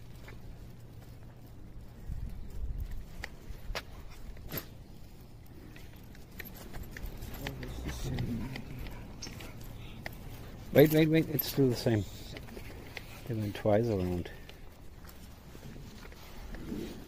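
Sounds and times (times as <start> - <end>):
footsteps on tiled pavement: 0.0 - 17.0
low steady rumble: 0.0 - 17.0
faint voices: 6.5 - 14.7.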